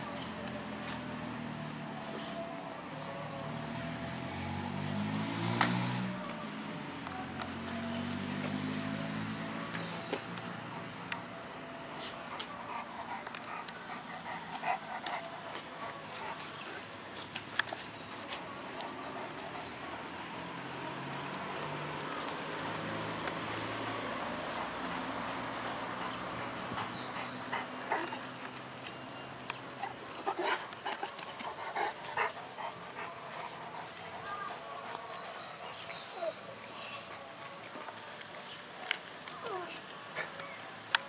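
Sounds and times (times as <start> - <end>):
dogs vocalizing while playing: 12.3 - 16.9, 25.9 - 28.4, 29.7 - 34.6.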